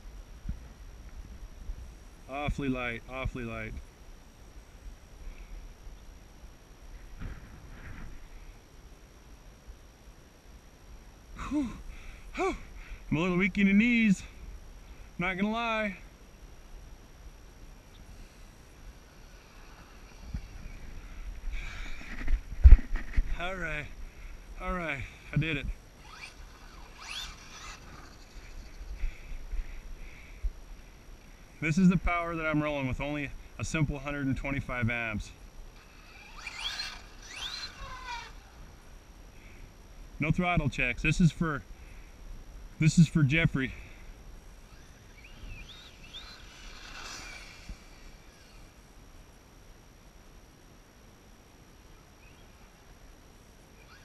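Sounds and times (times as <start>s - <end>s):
electric motor whining: 18.1s - 24.0s, 24.6s - 29.4s, 35.7s - 39.0s, 44.5s - 49.0s, 53.8s - 54.0s
wind on microphone: 19.3s - 24.0s
short sharp breaths: 28.9s - 31.5s.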